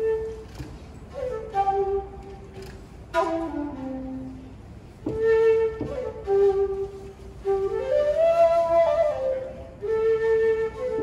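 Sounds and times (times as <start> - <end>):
shakuhachi playing: 0.0 - 11.0.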